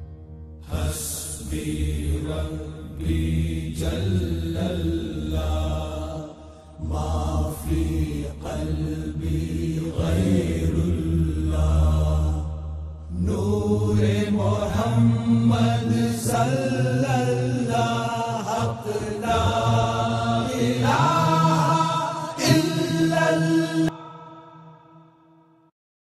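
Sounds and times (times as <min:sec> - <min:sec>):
voices chanting in chorus: 0:00.7 - 0:24.8.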